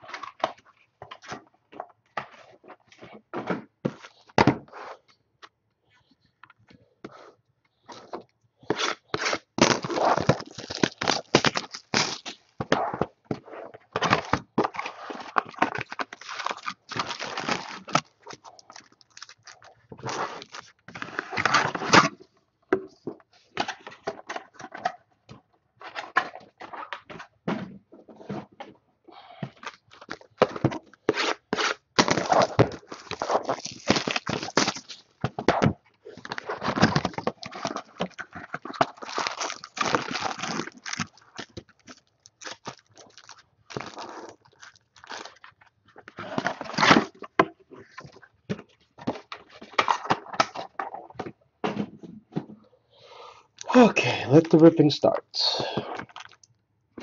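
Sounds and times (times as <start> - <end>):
cardboard and packs rustling: 7.8 - 22.3, 25.8 - 52.6.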